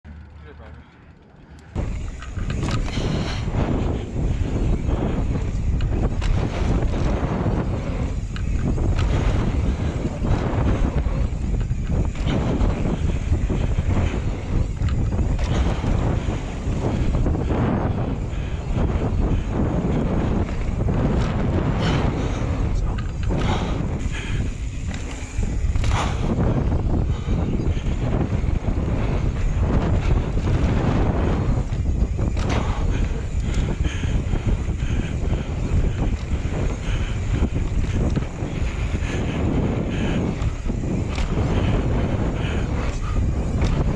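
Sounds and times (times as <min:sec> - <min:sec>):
wind buffeting microphone: 0:01.7 - 0:43.9.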